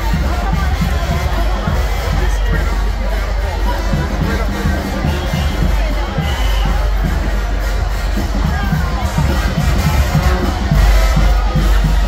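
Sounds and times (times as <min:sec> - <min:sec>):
brass band music: 0:00.0 - 0:12.0
crowd talking and calling out: 0:00.0 - 0:12.0.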